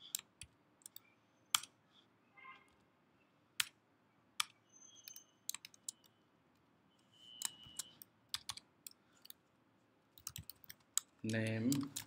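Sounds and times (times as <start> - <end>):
computer keyboard typing: 0.0 - 1.7, 4.4 - 6.1, 7.4 - 9.4, 10.2 - 12.0.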